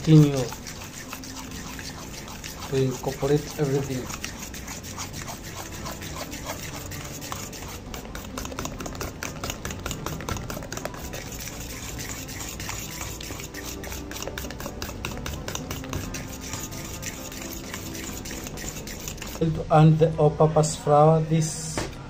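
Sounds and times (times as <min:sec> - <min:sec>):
spoon stirring batter in metal bowl: 0:00.0 - 0:20.8.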